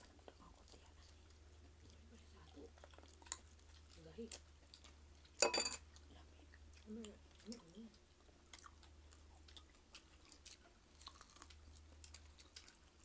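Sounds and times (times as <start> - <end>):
low steady hum: 0.0 - 13.0
person chewing with wet clicks: 0.0 - 13.0.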